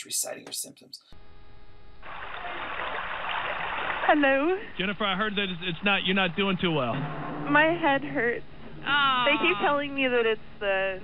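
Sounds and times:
steady static hiss: 0.0 - 11.0.

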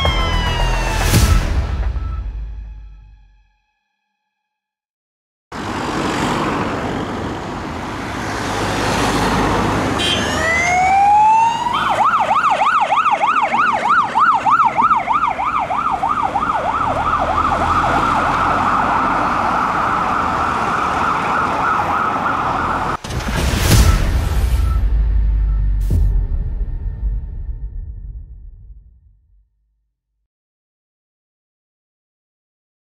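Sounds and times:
fire engine siren: 0.0 - 2.4, 8.6 - 23.0
traffic noise: 5.5 - 25.8.

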